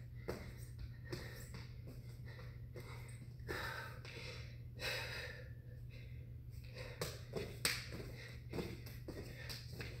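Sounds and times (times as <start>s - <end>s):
person breathing hard: 0.0s - 10.0s
steady low hum: 0.0s - 10.0s.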